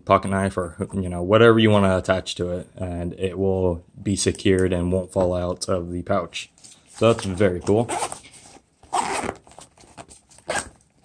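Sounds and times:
nylon pouch rustling: 6.6 - 11.0.

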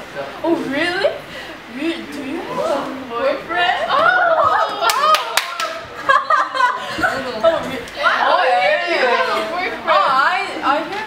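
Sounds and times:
girls talking: 0.4 - 11.0
girls laughing: 3.8 - 9.7
hand claps: 4.8 - 5.8.

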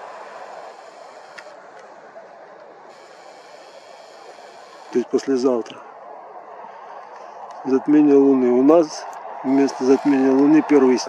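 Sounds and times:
faint short clicks: 1.2 - 1.9.

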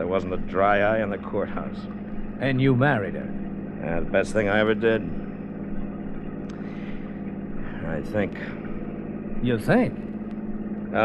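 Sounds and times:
car engine running: 0.0 - 11.0.

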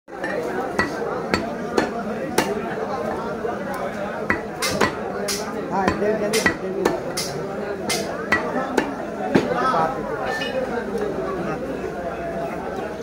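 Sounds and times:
cleaver chopping meat on wood: 0.3 - 3.2, 4.2 - 9.5.

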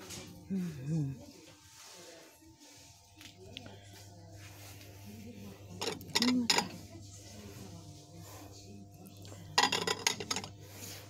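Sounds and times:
glass dishes clinking: 5.8 - 6.7, 9.6 - 10.5.

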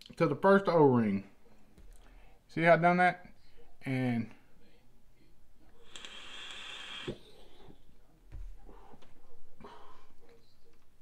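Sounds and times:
vape air draw hiss: 5.8 - 7.3.

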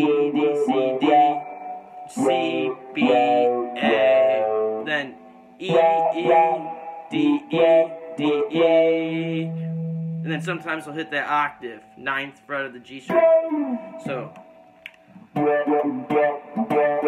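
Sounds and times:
electric guitar playing chords: 0.0 - 4.9, 5.7 - 10.6, 13.1 - 14.6, 15.2 - 17.0.

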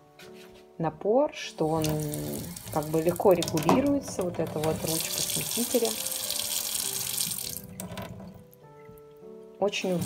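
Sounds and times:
tap water running into steel sink: 1.6 - 8.5.

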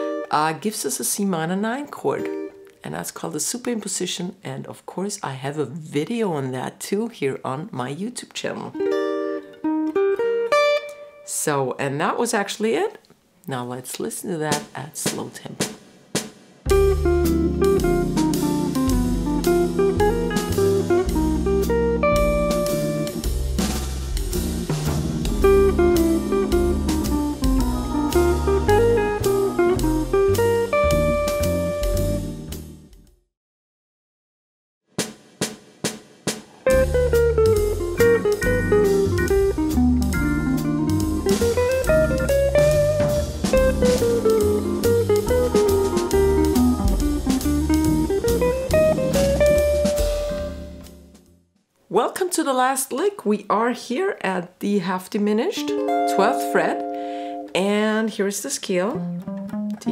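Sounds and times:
electric jazz guitar lick: 8.7 - 11.3, 16.7 - 32.7, 36.6 - 51.3, 55.6 - 57.6, 58.8 - 59.9
backing track bass and drums: 14.5 - 33.0, 35.2 - 51.2.

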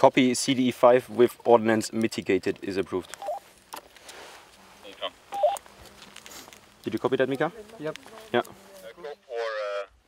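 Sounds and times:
radio static hiss: 4.6 - 9.8.

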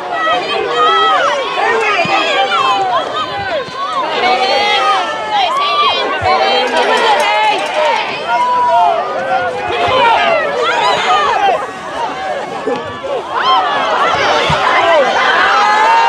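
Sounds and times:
crowd shouting and cheering: 0.0 - 16.0.

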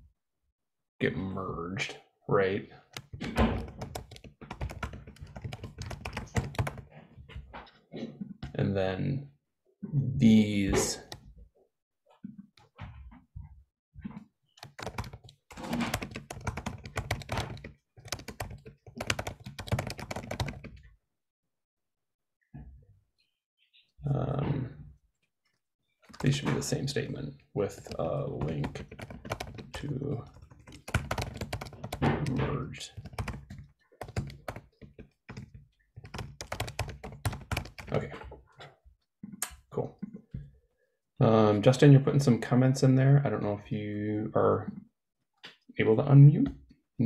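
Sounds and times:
typing on computer keyboard: 2.9 - 6.9, 14.6 - 20.8, 26.1 - 27.0, 27.7 - 38.3.

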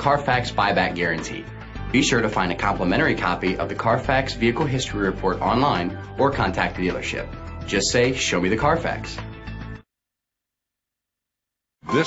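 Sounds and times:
music: 0.0 - 9.9.

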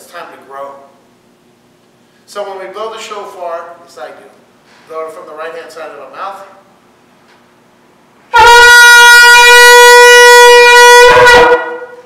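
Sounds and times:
shofar blast: 8.3 - 12.0.

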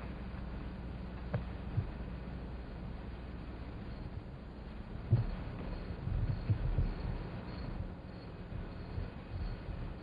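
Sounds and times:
steady low hum: 0.0 - 10.0
muffled low thumps: 1.3 - 2.1, 5.0 - 7.9.

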